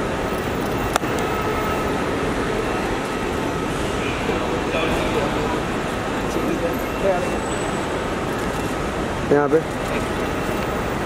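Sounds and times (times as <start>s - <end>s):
outdoor traffic: 0.0s - 11.0s.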